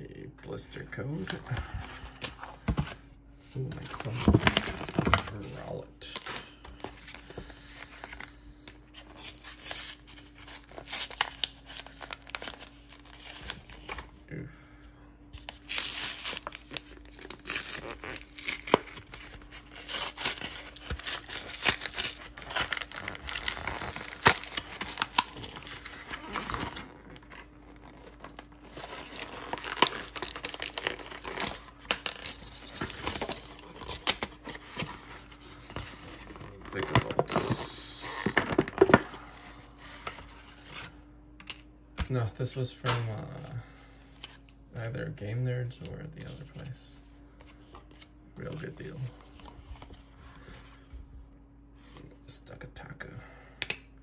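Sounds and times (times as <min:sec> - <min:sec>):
cardboard tearing: 0:09.1 - 0:14.0, 0:15.5 - 0:31.7
plastic crinkling: 0:15.5 - 0:31.8.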